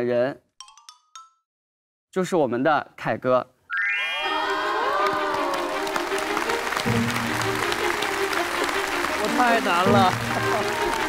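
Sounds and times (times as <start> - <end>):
audience applauding: 4.1 - 11.0.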